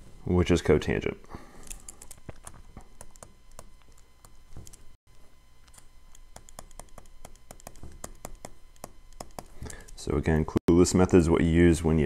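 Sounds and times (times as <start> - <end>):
stylus tapping on tablet screen: 5.7 - 9.7.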